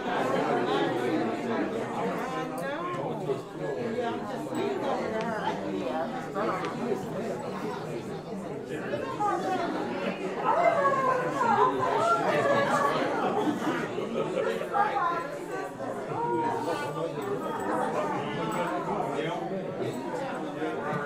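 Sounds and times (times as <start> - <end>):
murmur of overlapping conversation: 0.0 - 21.0.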